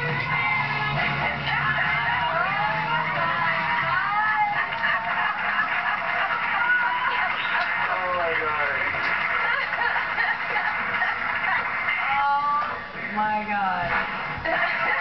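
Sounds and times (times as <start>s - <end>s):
television music: 0.0s - 15.0s
television voices: 0.0s - 15.0s.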